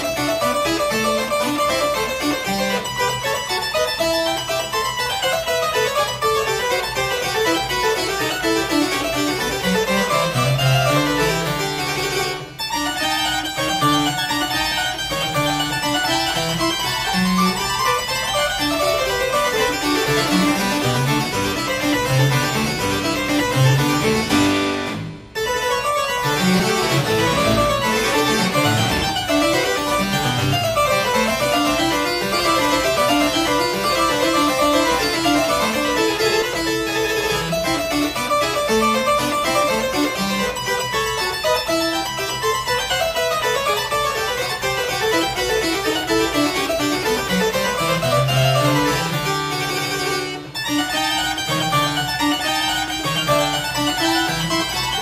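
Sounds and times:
harpsichord playing baroque piece: 0.0 - 55.0.

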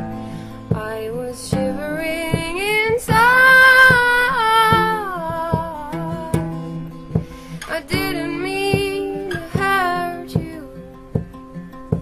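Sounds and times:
plucked acoustic guitar: 0.0 - 12.0
woman singing: 0.0 - 12.0.

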